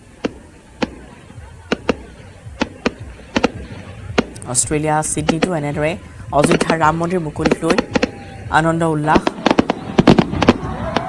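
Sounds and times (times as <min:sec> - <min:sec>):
fireworks cracking and banging: 0:00.0 - 0:11.0.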